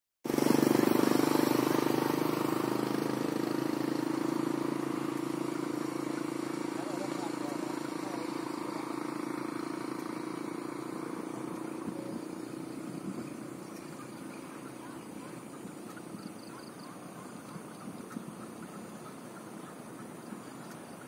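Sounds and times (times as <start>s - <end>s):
small engine running: 0.3s - 21.0s.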